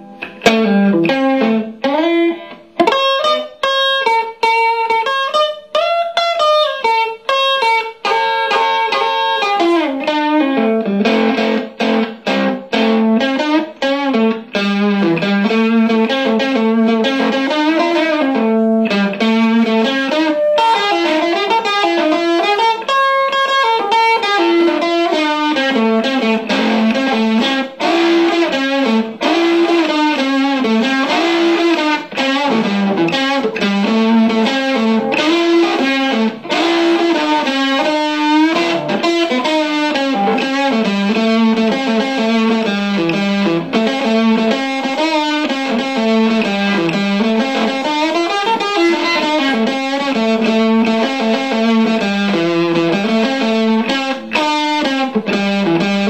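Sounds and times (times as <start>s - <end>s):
electric guitar melody: 0.0s - 56.0s.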